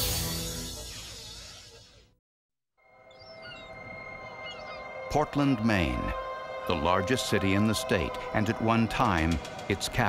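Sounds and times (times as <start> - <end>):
gulls calling: 3.0 - 10.0
steady drone: 3.8 - 10.0.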